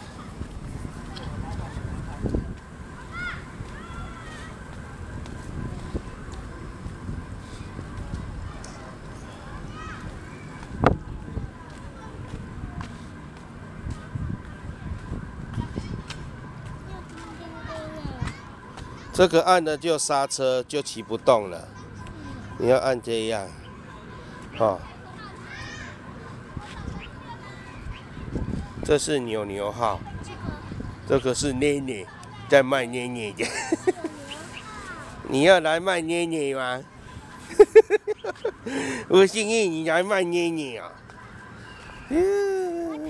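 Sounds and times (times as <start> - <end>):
wind rumbling on microphone: 0.0 - 17.0, 27.8 - 29.1
bicycle road rumble: 0.0 - 19.3
children's voices: 2.9 - 13.1, 13.8 - 19.4, 21.7 - 22.8, 23.7 - 28.9, 29.9 - 32.6, 33.4 - 35.4, 41.2 - 43.0.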